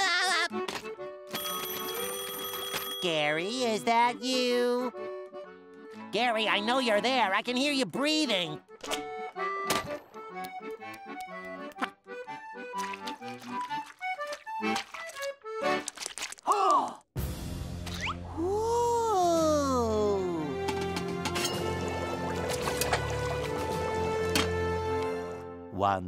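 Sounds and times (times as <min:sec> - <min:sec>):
cartoon background music: 0:00.0 - 0:01.4, 0:03.0 - 0:15.9, 0:17.2 - 0:26.0.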